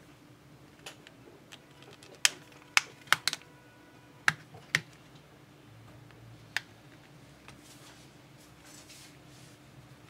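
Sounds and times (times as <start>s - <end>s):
plastic clips snapping: 1.7s - 3.4s.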